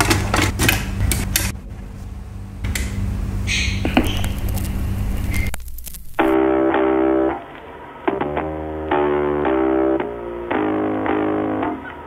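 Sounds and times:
turntable low hum: 0:00.0 - 0:12.0
spinning record hiss: 0:03.0 - 0:08.1.

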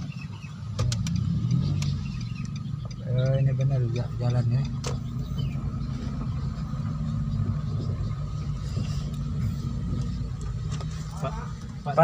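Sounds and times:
car engine humming inside cabin: 0:00.0 - 0:12.0.

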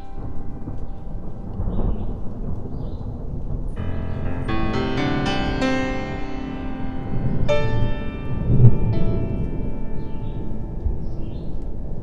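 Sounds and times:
low rumble of thunder: 0:00.0 - 0:12.0
rain falling: 0:00.0 - 0:12.0
piano music: 0:03.8 - 0:12.0.

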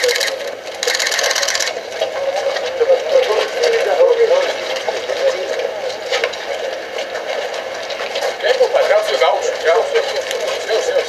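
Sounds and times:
camera shutter bursts: 0:00.0 - 0:01.8
crowd voices: 0:00.0 - 0:11.0.

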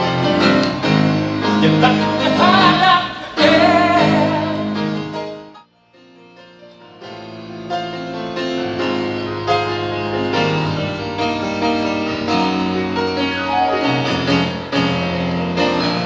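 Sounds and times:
grand piano playing: 0:00.0 - 0:16.0.

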